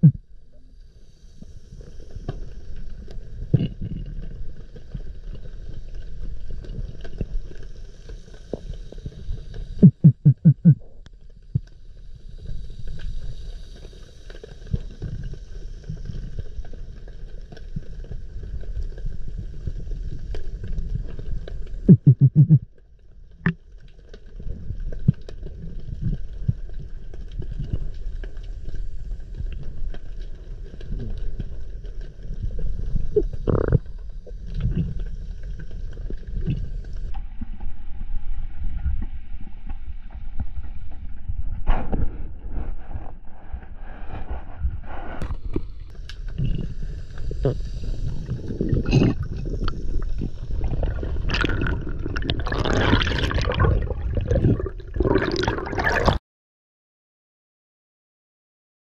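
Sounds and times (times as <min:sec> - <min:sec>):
low underwater rumble: 0:00.0 - 0:00.7, 0:02.9 - 0:13.4, 0:14.8 - 0:22.7, 0:24.4 - 0:56.2.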